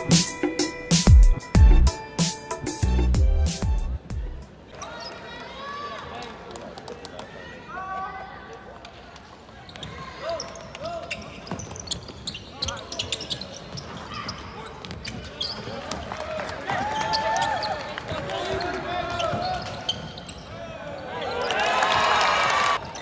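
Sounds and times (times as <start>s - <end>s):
sneakers squeaking: 9.3s - 16.1s, 16.7s - 22.1s.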